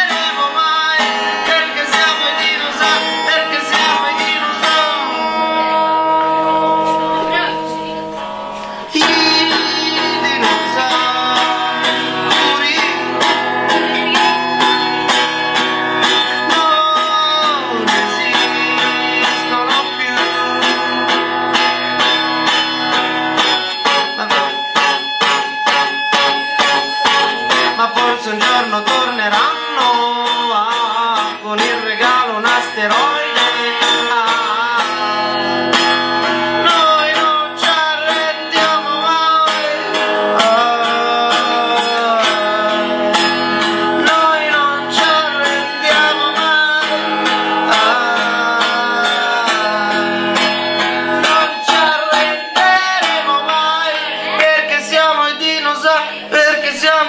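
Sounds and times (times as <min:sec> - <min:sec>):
person singing: 0:00.0 - 0:57.0
strummed guitar: 0:00.0 - 0:57.0.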